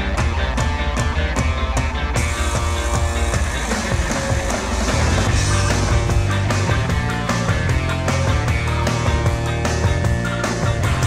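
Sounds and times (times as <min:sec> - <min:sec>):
rock music with drum beat: 0:00.0 - 0:11.0.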